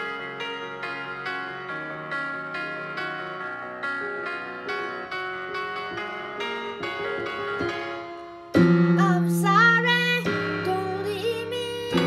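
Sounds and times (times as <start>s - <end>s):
piano backing track: 0.0s - 12.0s
girl singing: 9.0s - 12.0s.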